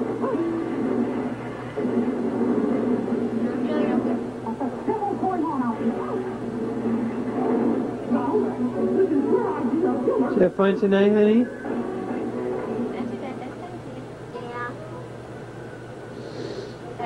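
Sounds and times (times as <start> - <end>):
indistinct television voices: 0.0 - 17.0.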